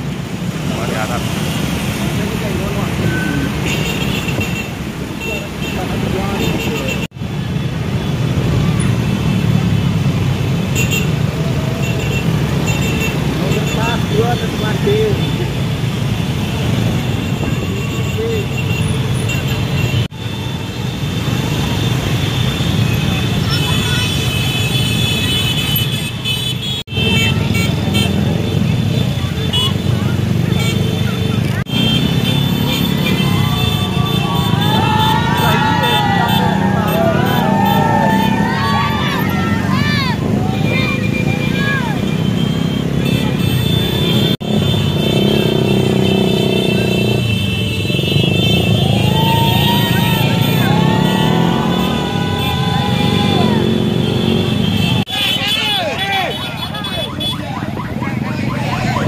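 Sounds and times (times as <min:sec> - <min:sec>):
motorcycle and scooter engines: 0:00.0 - 0:59.0
crowd voices: 0:27.1 - 0:44.4, 0:48.2 - 0:59.0.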